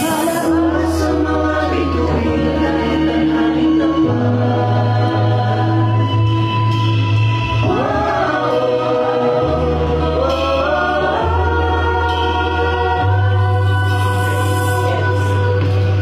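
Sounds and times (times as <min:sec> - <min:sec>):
long bass notes: 0:00.0 - 0:16.0
women singing together: 0:00.0 - 0:16.0.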